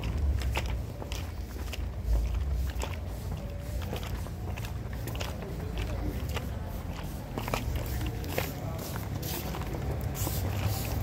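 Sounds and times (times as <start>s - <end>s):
steady low rumble: 0.0s - 8.1s
footsteps on stone paving: 0.0s - 11.0s.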